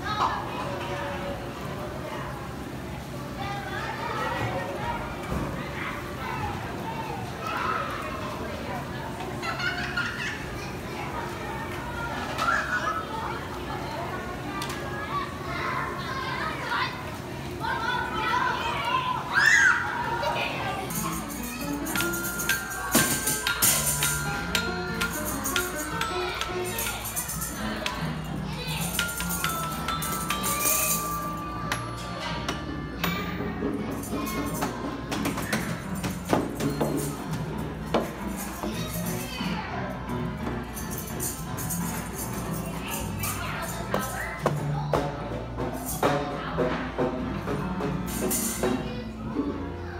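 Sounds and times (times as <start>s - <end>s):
children talking and calling out: 0.0s - 47.5s, 48.2s - 49.9s
glockenspiel notes struck with mallets: 21.0s - 33.5s.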